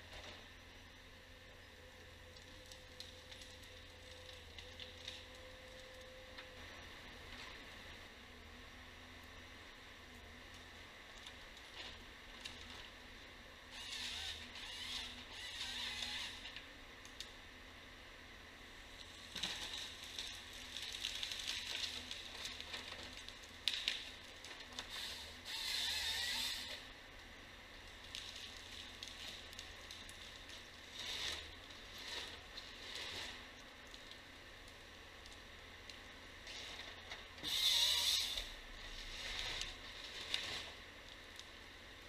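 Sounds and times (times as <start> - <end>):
distant rasping mechanical noise: 0.0 - 16.8, 18.7 - 40.9.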